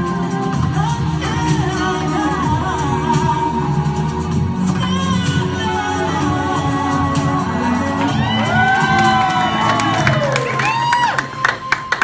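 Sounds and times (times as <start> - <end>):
music: 0.0 - 12.0
audience whooping and cheering: 7.6 - 12.0
hand claps: 9.0 - 12.0.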